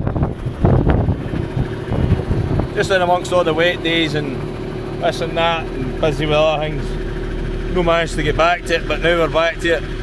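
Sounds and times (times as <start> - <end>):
wind buffeting microphone: 0.0 - 3.5.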